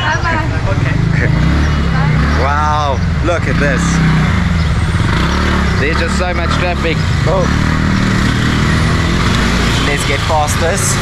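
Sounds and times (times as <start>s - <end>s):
motorbike engines idling: 0.0s - 11.0s.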